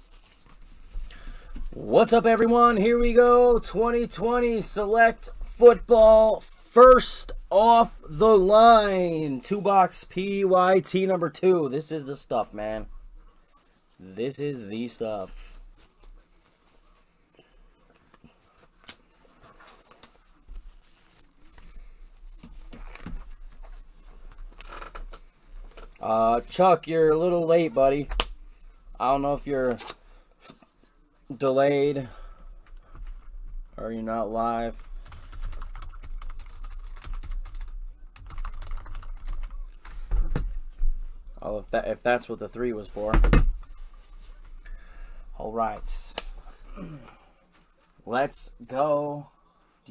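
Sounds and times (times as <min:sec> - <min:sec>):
computer keyboard typing: 0:35.0 - 0:39.7.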